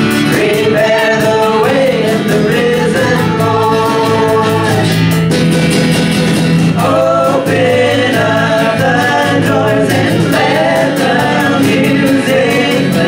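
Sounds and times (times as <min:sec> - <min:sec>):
voices singing together: 0:00.0 - 0:05.2, 0:06.6 - 0:13.0
acoustic guitar: 0:00.0 - 0:13.0
drums: 0:00.0 - 0:13.0.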